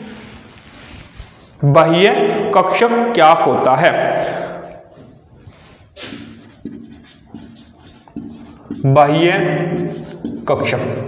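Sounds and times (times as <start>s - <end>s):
marker writing on whiteboard: 5.9s - 11.0s.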